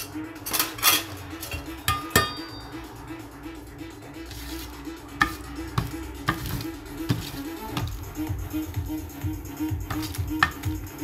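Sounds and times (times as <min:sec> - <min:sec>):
metallic clinks and scrapes: 0:00.0 - 0:02.7.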